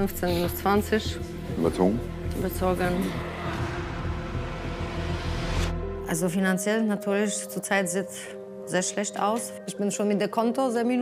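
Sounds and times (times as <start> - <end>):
sustained low music notes: 0.0 - 7.4
rushing noise: 2.4 - 6.1.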